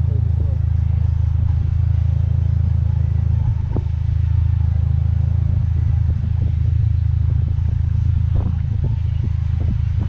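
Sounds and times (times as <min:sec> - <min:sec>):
car engine idling: 0:00.0 - 0:10.0
wind buffeting microphone: 0:00.0 - 0:10.0.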